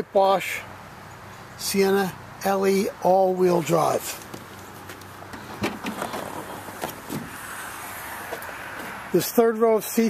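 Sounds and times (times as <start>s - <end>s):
liftgate clicks and knocks: 5.3s - 7.4s.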